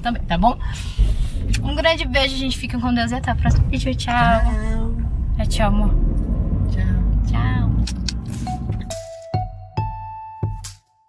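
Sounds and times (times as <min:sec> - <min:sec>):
car cabin rumble: 0:00.0 - 0:09.0.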